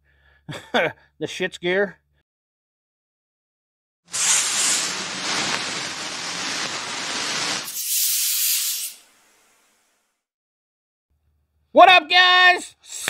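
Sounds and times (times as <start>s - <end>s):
bright thin hiss: 4.1s - 10.0s
rough steady hiss: 4.1s - 10.0s.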